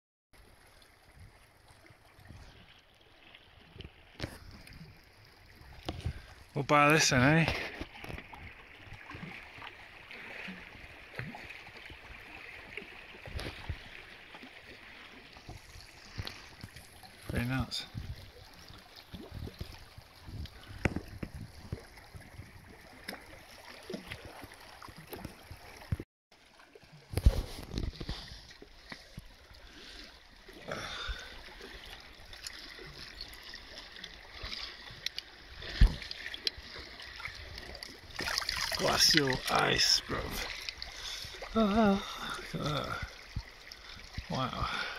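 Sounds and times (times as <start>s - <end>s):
small waves lapping on stones: 5.8s - 44.9s.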